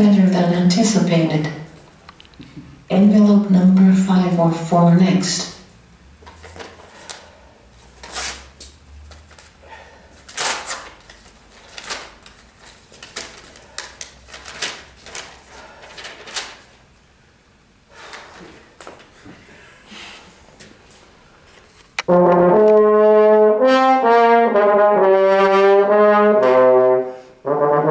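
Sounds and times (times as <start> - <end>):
paper envelope rustling: 6.2 - 7.2, 7.8 - 9.6, 10.2 - 16.8.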